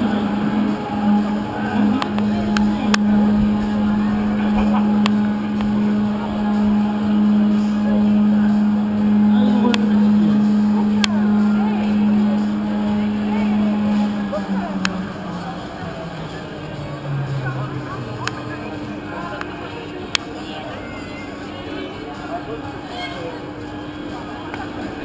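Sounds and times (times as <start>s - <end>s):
lift machinery humming: 0.0s - 25.0s.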